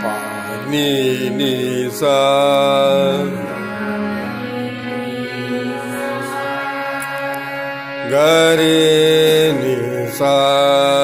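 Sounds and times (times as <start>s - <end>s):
harmoniums sounding steady notes: 0.0s - 11.0s
person singing: 0.0s - 11.0s.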